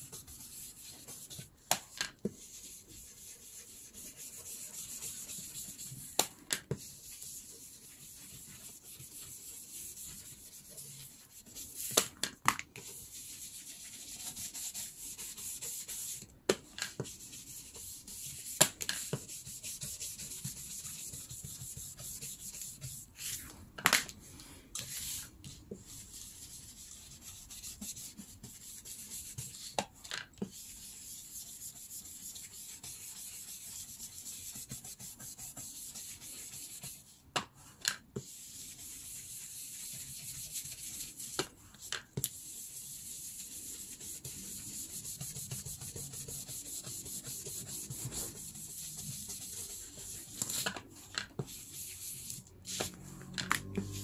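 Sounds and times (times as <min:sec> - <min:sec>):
brush rubbing on paper: 0:00.0 - 0:01.5, 0:02.4 - 0:11.9, 0:12.8 - 0:16.2, 0:17.0 - 0:23.4, 0:24.8 - 0:29.7, 0:30.5 - 0:37.2, 0:38.2 - 0:54.0.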